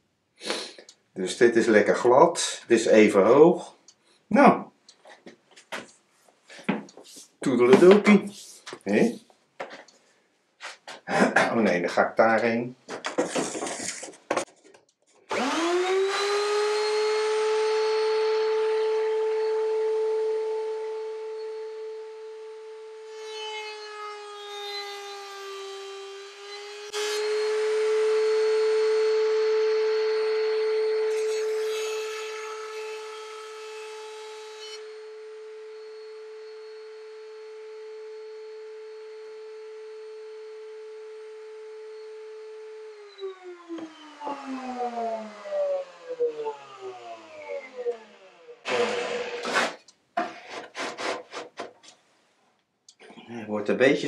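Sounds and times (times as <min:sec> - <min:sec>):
router scraping through wood: 0:13.0 - 0:14.1, 0:15.3 - 0:19.6, 0:30.2 - 0:35.0, 0:43.0 - 0:51.9
electric router whining: 0:15.3 - 0:49.9.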